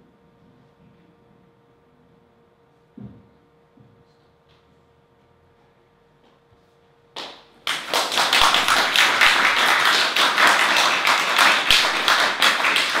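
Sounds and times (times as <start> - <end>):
audience applauding: 7.2 - 13.0.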